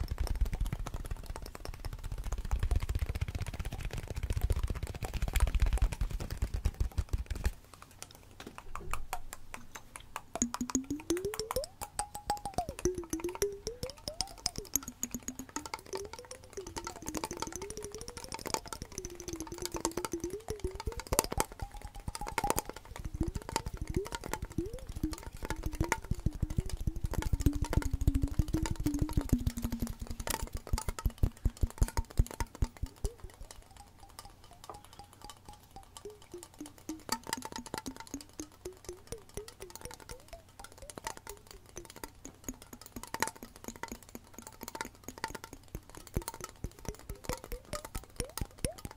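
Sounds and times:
fingers tapping on a container: 0:00.0 - 0:48.9
soft lo-fi music: 0:10.4 - 0:48.9.

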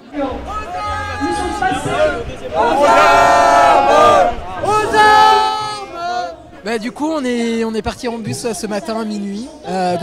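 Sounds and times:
demonstrators chanting: 0:00.0 - 0:06.6.

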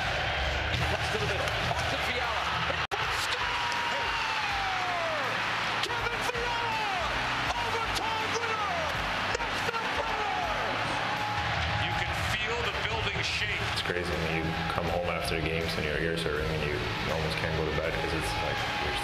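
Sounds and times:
arena crowd cheering and yelling: 0:00.0 - 0:19.0
long falling yells: 0:02.9 - 0:11.7.

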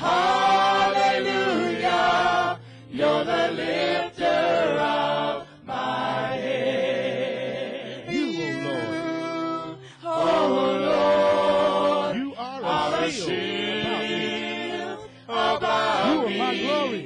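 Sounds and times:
gospel group singing in harmony: 0:00.0 - 0:17.0.

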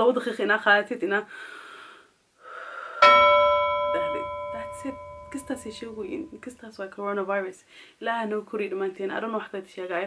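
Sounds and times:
bell-like chime: 0:03.0 - 0:06.5.

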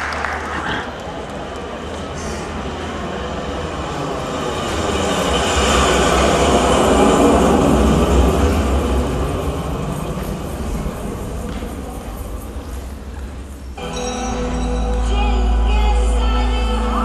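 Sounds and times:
train passing by rumbling: 0:00.0 - 0:14.9.

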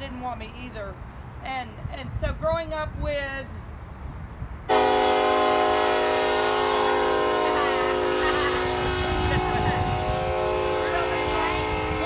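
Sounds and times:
train horn chord: 0:04.7 - 0:12.0.

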